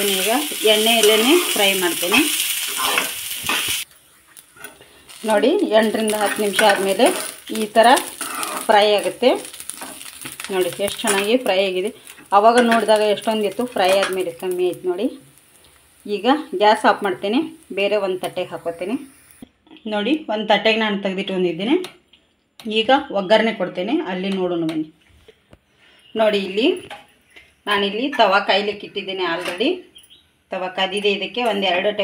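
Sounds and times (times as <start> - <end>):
woman talking: 0.0 - 2.3, 5.2 - 8.1, 10.5 - 15.2, 16.1 - 19.0, 26.2 - 26.9, 27.7 - 29.9, 30.5 - 32.0
vegetables sizzling in hot oil: 0.0 - 19.4
metal spatula stirring: 0.1 - 14.3.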